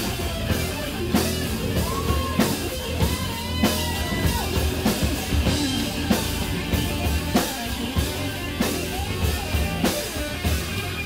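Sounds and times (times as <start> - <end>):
bass guitar: 0.0 - 11.0
drum kit: 0.0 - 11.0
electric guitar lead: 0.0 - 11.0.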